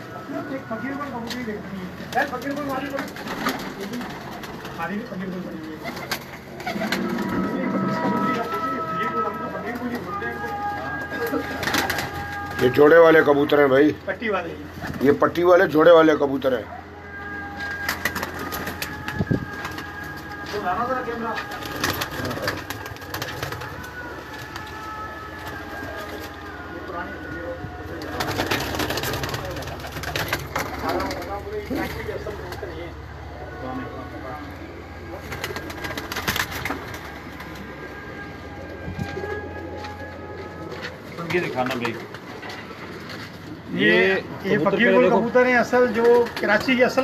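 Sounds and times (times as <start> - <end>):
pigeons cooing: 1.7 - 10.1, 17.6 - 33.4, 34.5 - 44.1.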